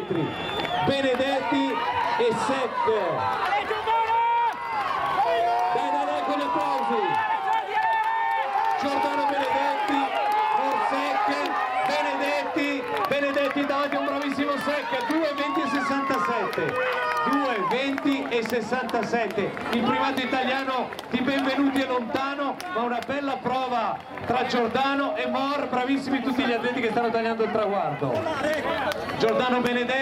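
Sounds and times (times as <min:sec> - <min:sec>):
spectators shouting and cheering: 0:00.0 - 0:30.0.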